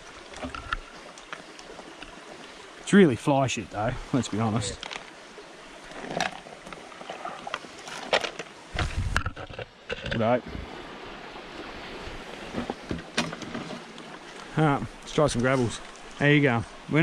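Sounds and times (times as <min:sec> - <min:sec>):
creek rushing: 0:00.0 - 0:09.2, 0:09.8 - 0:17.0.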